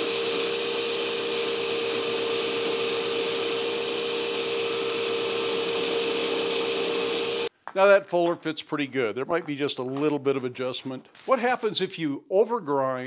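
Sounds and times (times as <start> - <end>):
belt grinder humming: 0.0 - 7.5
steel grinding hiss: 0.0 - 7.5.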